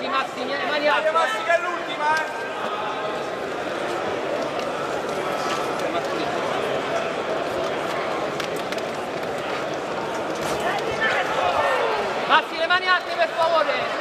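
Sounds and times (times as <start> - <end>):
arena crowd voices: 0.0 - 14.0.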